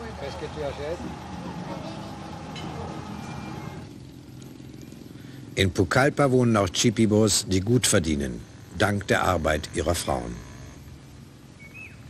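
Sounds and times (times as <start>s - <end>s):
street traffic: 0.0s - 12.0s.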